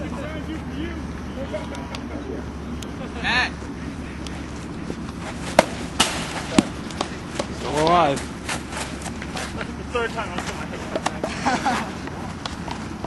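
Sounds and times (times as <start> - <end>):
bat striking baseball: 5.1 - 7.9
sharp knocks: 5.5 - 7.6.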